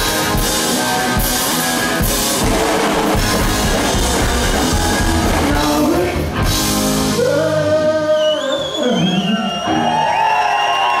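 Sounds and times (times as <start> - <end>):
live band playing: 0.0 - 9.0.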